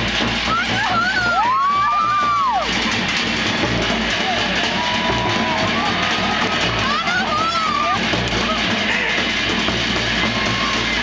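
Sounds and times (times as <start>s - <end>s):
show music with drum beat: 0.0s - 11.0s.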